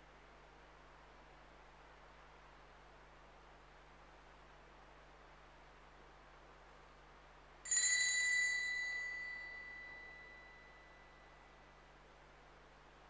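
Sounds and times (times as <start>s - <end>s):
small altar bell ringing: 7.7s - 11.4s.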